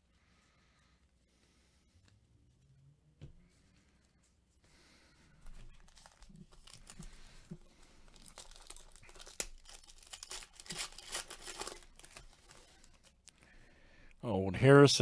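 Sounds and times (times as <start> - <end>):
foil wrapper crinkling: 5.6 - 13.5.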